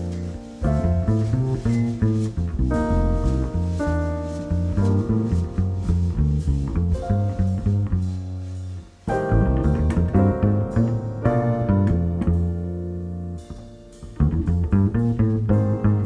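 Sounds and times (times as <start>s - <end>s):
live acoustic jazz quartet: 0.0s - 16.0s
plucked double bass line: 0.0s - 16.0s.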